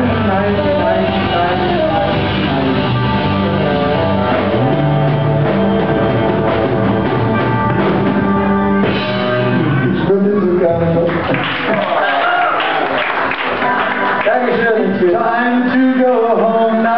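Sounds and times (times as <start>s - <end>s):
saxophone leading: 0.0s - 10.9s
live rock band playing ballad: 0.0s - 11.7s, 13.3s - 16.9s.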